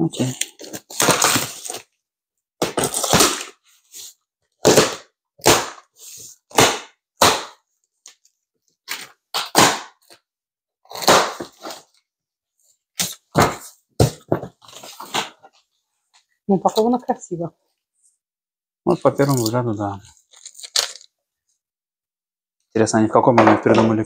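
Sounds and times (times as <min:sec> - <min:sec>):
box cutter slitting packing tape: 0:00.6 - 0:01.8, 0:02.6 - 0:03.6, 0:10.9 - 0:11.8.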